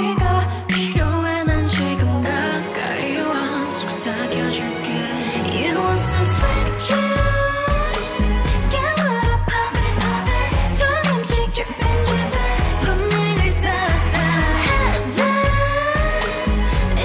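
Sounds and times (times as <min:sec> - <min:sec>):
female vocals: 0:00.0 - 0:17.0
bass-heavy dance beat: 0:00.1 - 0:02.0, 0:05.9 - 0:17.0.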